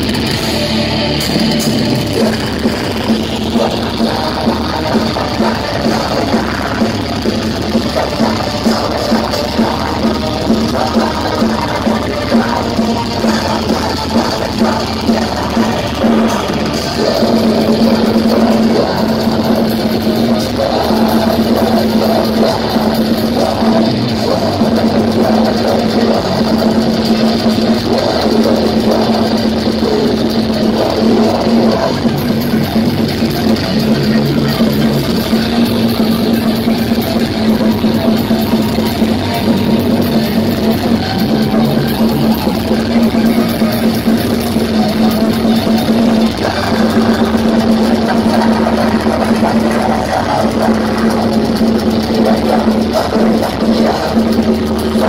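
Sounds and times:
distorted electric guitars: 0.0s - 55.0s
drum kit: 0.0s - 55.0s.

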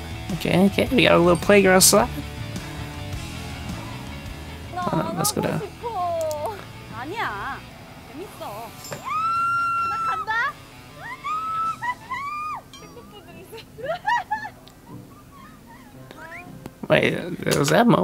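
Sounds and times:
quiet background music: 0.0s - 18.0s
young women crying and pleading: 2.1s - 16.6s.

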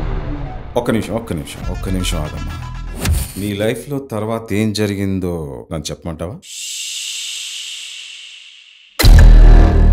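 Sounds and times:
music: 1.5s - 3.4s
woman whispering shhh: 6.5s - 8.8s.

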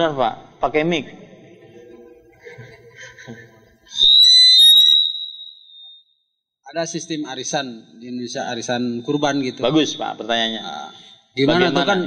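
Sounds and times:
microphone feedback squeal: 3.9s - 6.2s, 10.6s - 11.3s.

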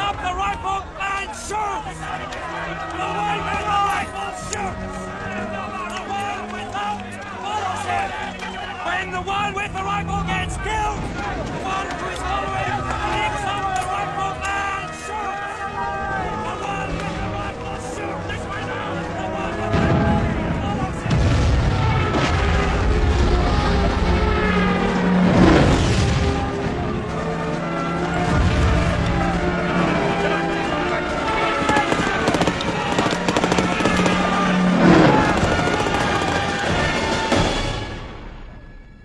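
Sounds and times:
orchestral film score: 0.0s - 39.0s
rumbling gunfire: 19.6s - 29.9s, 31.3s - 37.8s
explosions: 19.7s - 27.5s, 32.5s - 38.0s.

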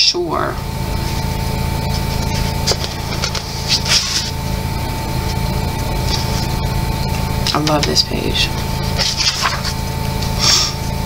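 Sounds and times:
steady low hum: 0.0s - 11.0s
paper page turning: 2.7s - 4.3s, 9.0s - 9.8s.

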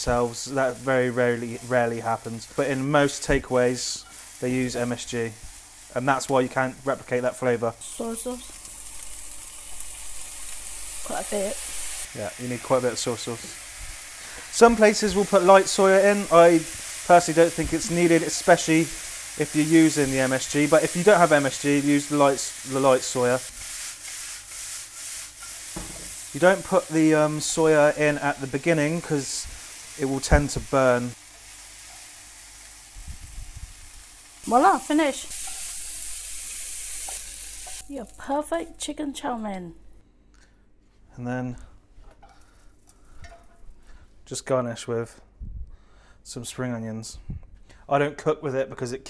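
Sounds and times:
food sizzling in a hot wok: 0.0s - 38.3s.

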